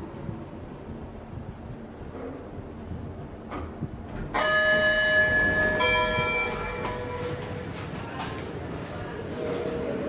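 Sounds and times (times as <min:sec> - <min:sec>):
elevator two-tone chime: 0:04.3 - 0:07.7.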